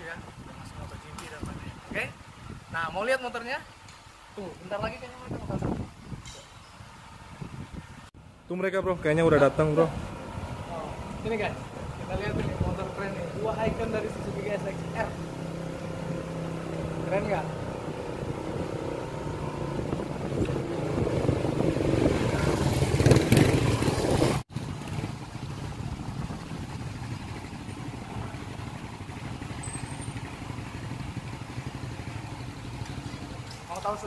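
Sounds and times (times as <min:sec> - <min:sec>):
motorcycles riding up: 0:00.0 - 0:34.0
motorcycles idling: 0:08.6 - 0:34.0.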